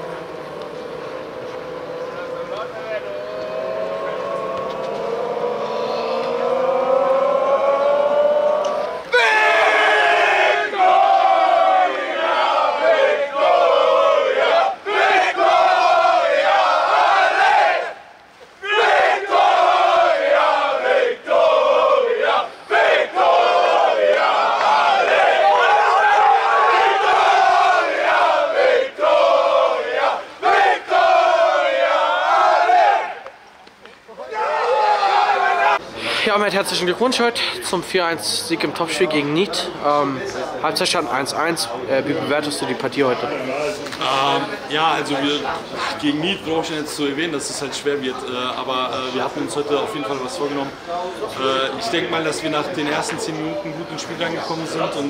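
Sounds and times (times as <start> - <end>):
team chanting in unison: 0.0 - 18.0, 18.6 - 33.3
rising group shout: 0.1 - 18.0, 18.6 - 33.3, 34.2 - 35.8.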